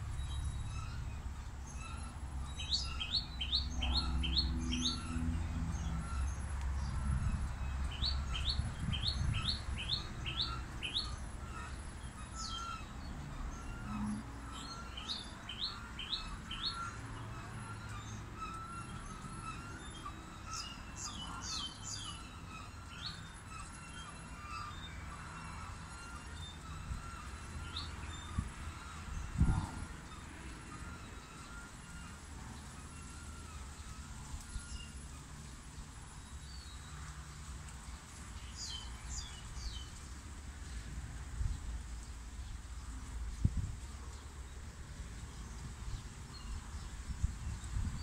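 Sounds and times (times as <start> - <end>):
wind or handling rumble: 0.0 - 14.3, 28.2 - 30.2, 36.5 - 48.0.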